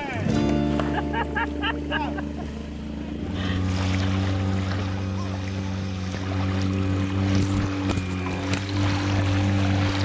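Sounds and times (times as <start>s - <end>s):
outboard motor running: 0.0s - 10.0s.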